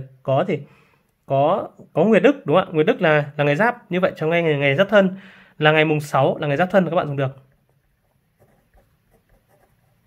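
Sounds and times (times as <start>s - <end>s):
ballpoint pen scratching on paper: 7.6s - 10.0s.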